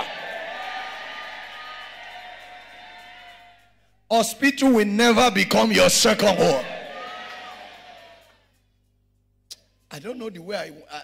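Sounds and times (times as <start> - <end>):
congregation cheering and shouting: 0.0 - 3.7, 5.2 - 8.5.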